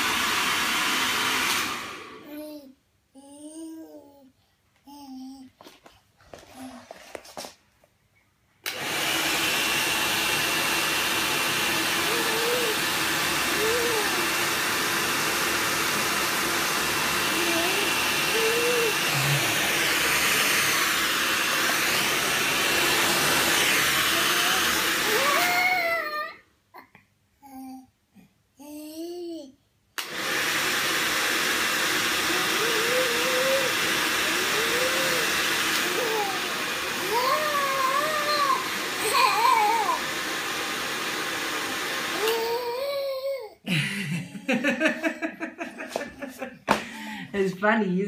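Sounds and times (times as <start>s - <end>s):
hair dryer blowing: 0.0s - 2.3s, 8.6s - 26.3s, 30.0s - 48.0s.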